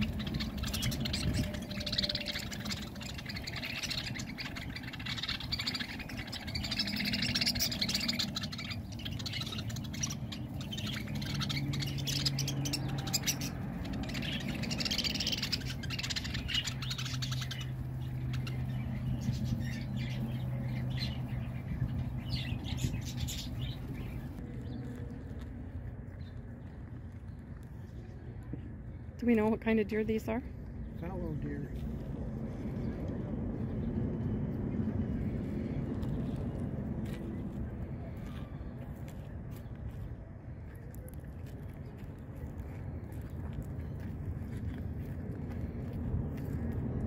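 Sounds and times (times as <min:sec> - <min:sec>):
parakeet squawks: 0:00.0 - 0:21.4
parakeets chattering and chirping: 0:00.0 - 0:25.0.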